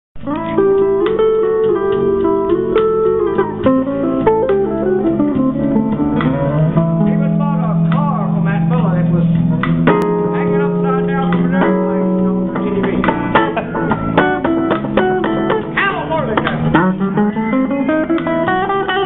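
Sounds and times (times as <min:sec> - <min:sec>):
electric guitar playing: 0:00.2 - 0:19.0.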